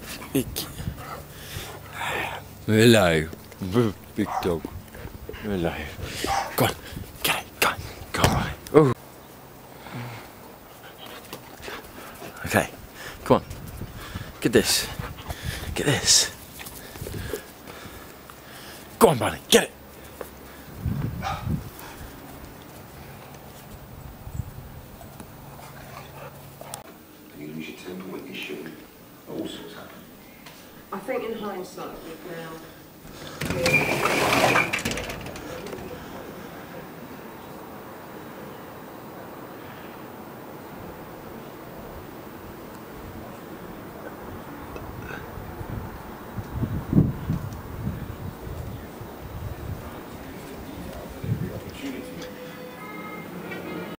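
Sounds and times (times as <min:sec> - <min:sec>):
low steady background noise: 0:00.0 - 0:53.9.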